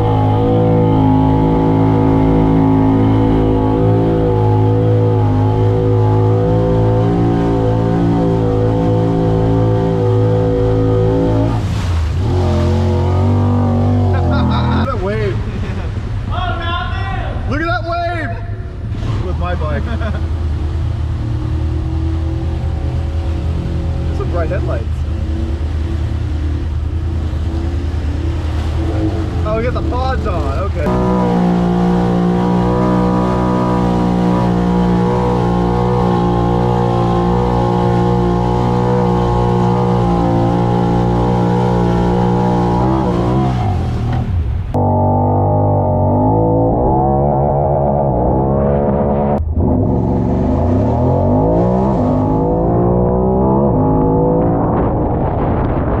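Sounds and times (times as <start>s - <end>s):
water splashing: 0.0s - 17.6s, 18.4s - 45.8s.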